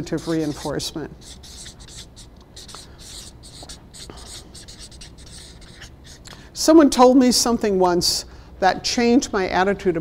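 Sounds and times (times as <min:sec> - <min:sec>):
marker pen writing on paper: 0:00.0 - 0:06.2.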